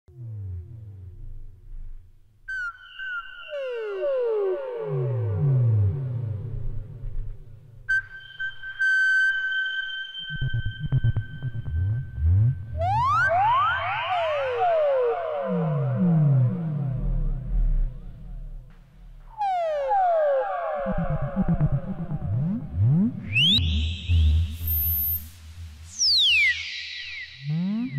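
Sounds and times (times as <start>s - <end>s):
synthesizer drone with pitch sweeps: 9.9s - 27.9s.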